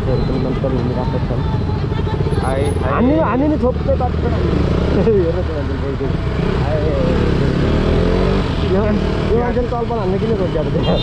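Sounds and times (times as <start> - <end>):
voices: 0.0 - 7.6, 8.5 - 11.0.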